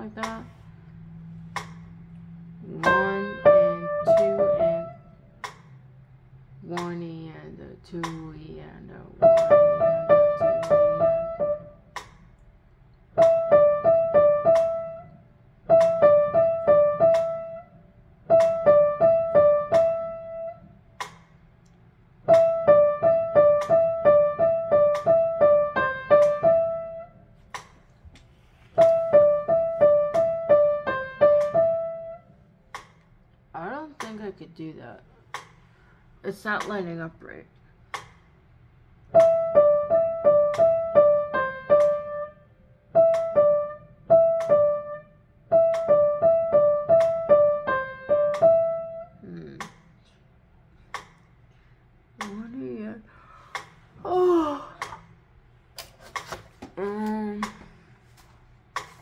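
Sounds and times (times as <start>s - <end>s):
piano trill: 0.0s - 6.0s, 6.6s - 12.1s, 13.1s - 21.1s, 22.1s - 27.4s, 28.8s - 32.8s, 39.1s - 49.6s.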